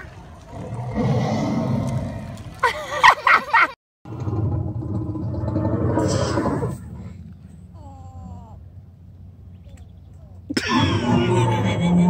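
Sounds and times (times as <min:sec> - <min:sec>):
low rumbling noise: 0:04.1 - 0:12.0.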